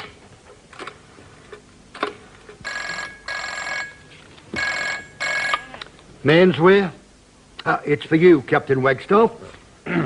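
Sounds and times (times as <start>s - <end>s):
desk telephone ringing: 2.6s - 5.6s.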